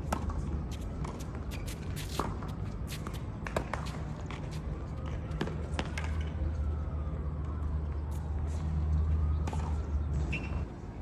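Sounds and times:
tennis ball struck and bouncing: 0.0 - 6.3.

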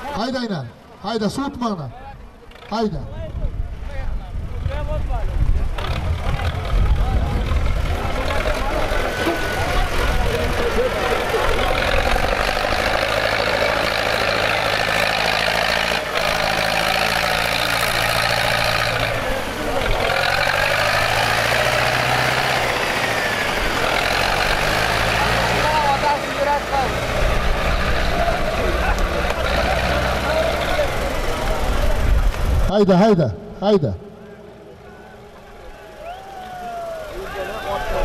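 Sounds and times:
crowd voices: 0.0 - 38.0
tractor diesel engine idling: 5.0 - 38.0.

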